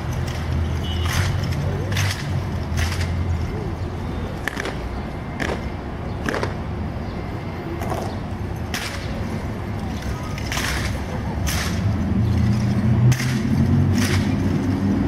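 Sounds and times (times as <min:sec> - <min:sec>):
steady background noise: 0:00.0 - 0:15.0
hands slapping rifles: 0:00.3 - 0:03.1, 0:10.4 - 0:11.8.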